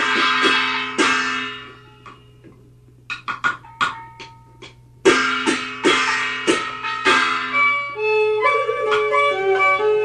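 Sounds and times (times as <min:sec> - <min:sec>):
opera accompaniment struck beat: 0:00.0 - 0:01.7, 0:03.2 - 0:08.0
low recording hum: 0:00.0 - 0:10.0.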